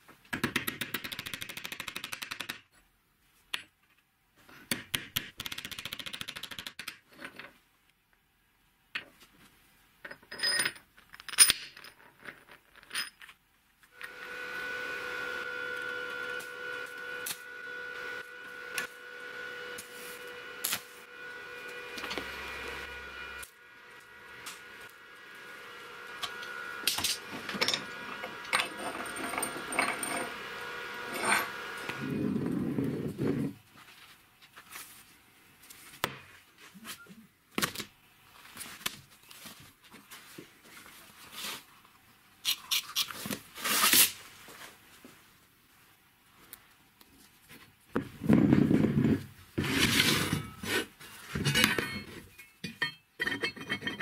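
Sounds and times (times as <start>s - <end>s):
electric machine humming: 14.0s - 32.8s
steel parts clinking: 26.2s - 30.4s, 51.4s - 54.0s.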